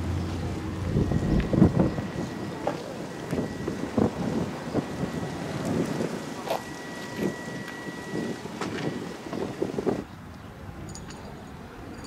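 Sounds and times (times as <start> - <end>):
wind buffeting microphone: 0.0 - 10.1
faint steady high tone: 0.4 - 10.1.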